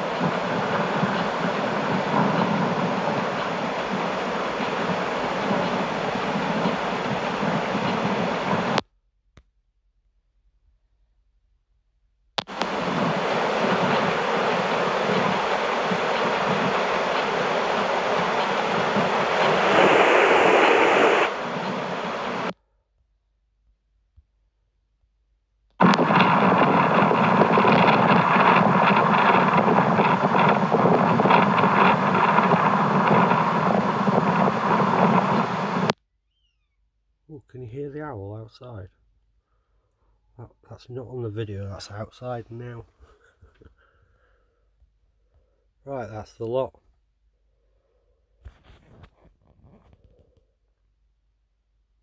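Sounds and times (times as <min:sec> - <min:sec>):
loud rushing noise: 0:00.0 - 0:08.8, 0:12.5 - 0:22.5, 0:25.8 - 0:35.9.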